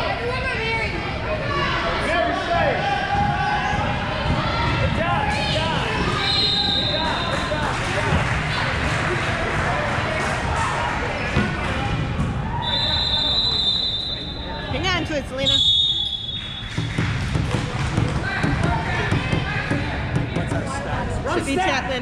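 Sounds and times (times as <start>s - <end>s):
voices of players and spectators: 0.0s - 22.0s.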